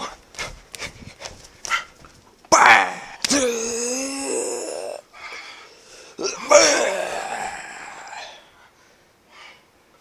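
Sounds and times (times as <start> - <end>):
man crying out in pain: 2.6 - 5.0, 6.2 - 8.4
sharp crack: 3.2 - 3.5.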